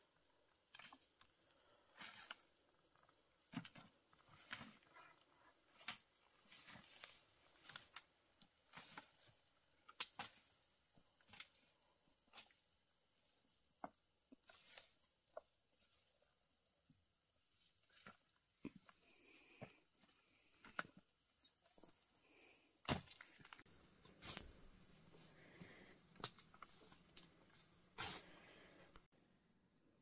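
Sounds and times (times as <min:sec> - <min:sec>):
twigs snapping underfoot: 0:22.8 - 0:23.7.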